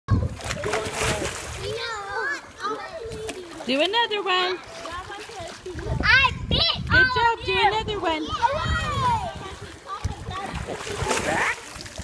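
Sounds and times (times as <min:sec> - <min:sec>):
voices: 0:00.1 - 0:11.9
water splashing in pool: 0:00.1 - 0:12.0.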